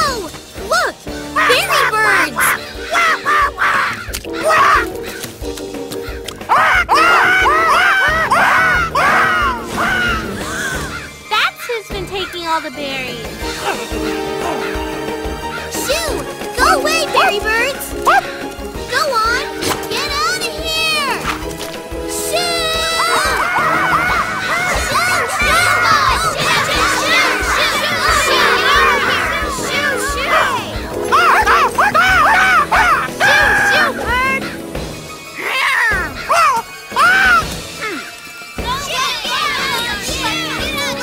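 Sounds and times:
background music: 0.0s - 41.0s
cartoon birds cawing: 1.4s - 11.3s, 11.9s - 15.8s, 22.4s - 38.4s.

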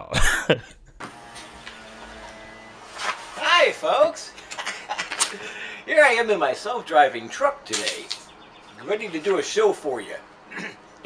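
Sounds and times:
man laughing: 0.0s - 1.0s, 4.2s - 5.9s, 10.5s - 10.9s
background hum: 4.0s - 11.0s.

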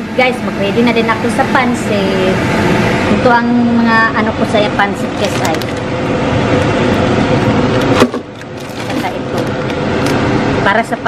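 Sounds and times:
plastic bag crinkling: 7.8s - 9.6s.

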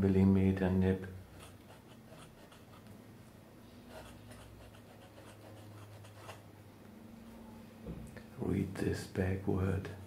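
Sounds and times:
pen nib scratching on paper: 1.3s - 2.9s, 3.9s - 6.4s.

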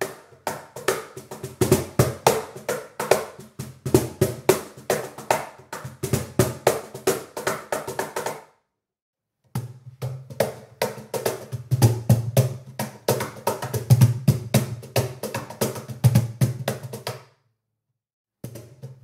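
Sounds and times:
cajon slaps and bass tones: 0.0s - 8.4s, 9.6s - 17.2s.

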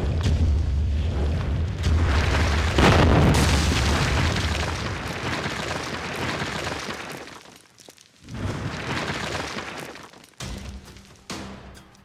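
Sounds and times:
deep rumbling boom: 0.0s - 5.0s
stone rubble crashing and crumbling: 1.8s - 11.2s.

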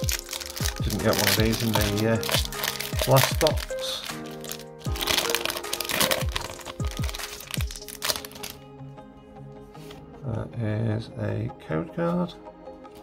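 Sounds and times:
foil wrapper crinkling: 0.0s - 8.6s
music with deep thudding beat: 0.0s - 10.1s.

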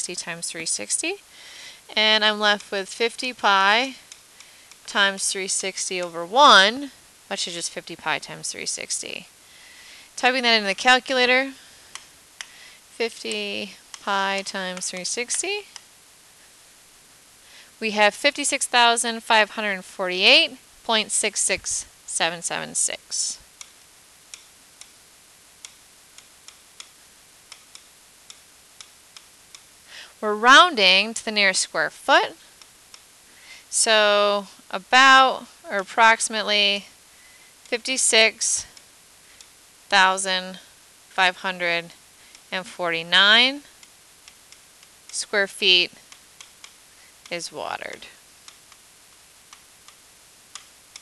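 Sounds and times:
faint room noise: 0.0s - 51.0s
faint hiss: 0.4s - 7.6s, 8.3s - 31.5s, 32.2s - 51.0s.

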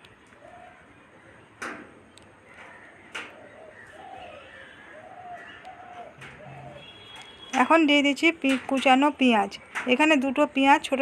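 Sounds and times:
faint bird calls: 0.3s - 7.4s.

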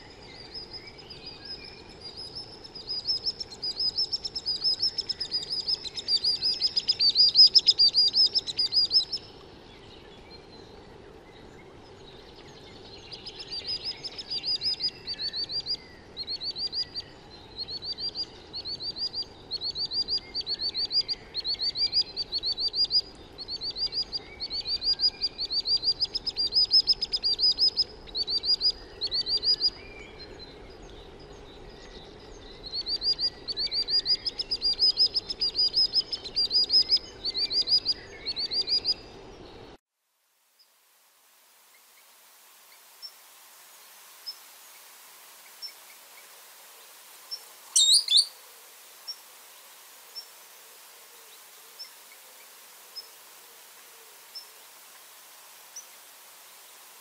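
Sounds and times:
low background noise: 0.0s - 57.0s
sandpiper trilling song: 47.8s - 48.3s.

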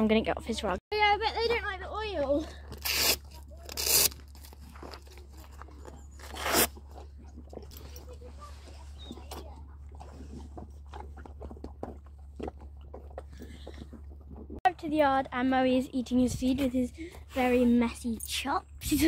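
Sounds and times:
horse chewing and crunching feed: 2.0s - 14.9s.

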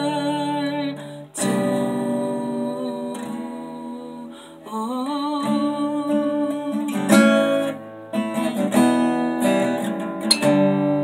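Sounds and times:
acoustic guitar playing: 0.0s - 11.0s.

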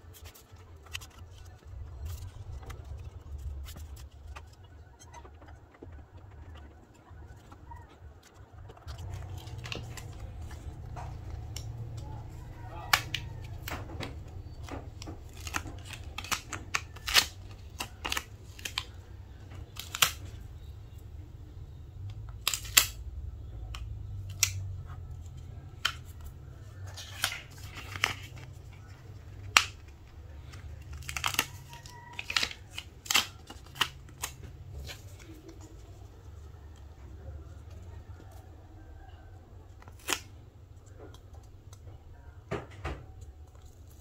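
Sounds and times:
stickers peeling and crackling: 0.0s - 21.1s, 22.0s - 44.0s.

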